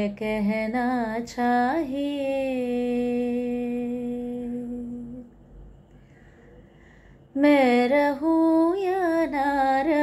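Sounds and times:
woman singing a long note: 0.0s - 5.3s.

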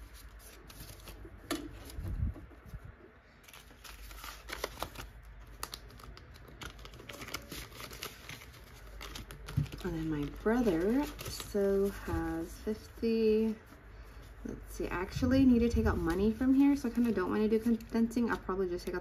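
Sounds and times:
plastic crackles: 0.0s - 14.4s, 15.1s - 19.0s
banknotes rustling and crinkling: 0.0s - 19.0s.

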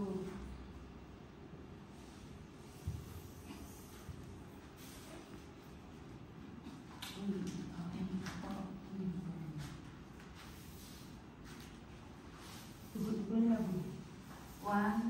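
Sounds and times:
low background noise: 0.0s - 15.0s.

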